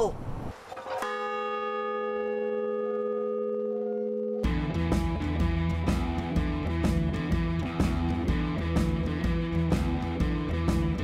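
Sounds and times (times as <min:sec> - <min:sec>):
large bell ringing: 0:01.0 - 0:04.9.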